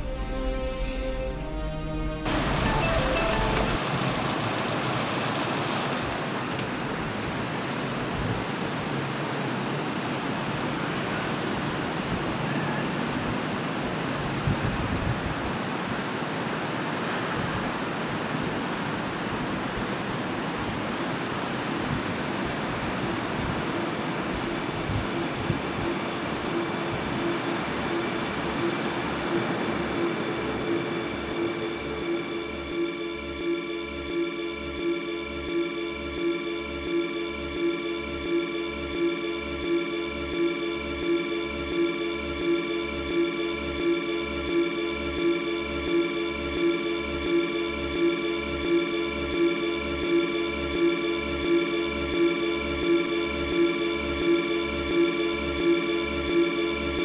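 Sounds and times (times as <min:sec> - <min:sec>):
car road and engine noise: 0:02.3 - 0:07.6.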